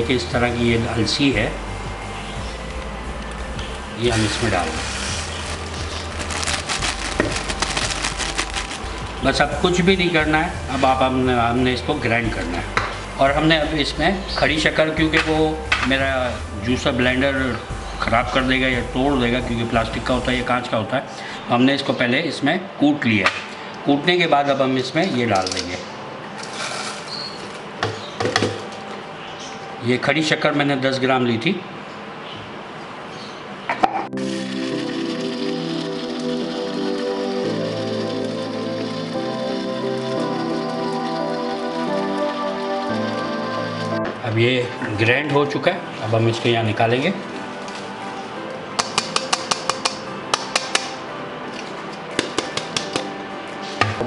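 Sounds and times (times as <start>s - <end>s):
background music: 0.0s - 32.2s, 32.9s - 54.0s
sugar crystals rattling into grinder jar: 4.2s - 9.2s.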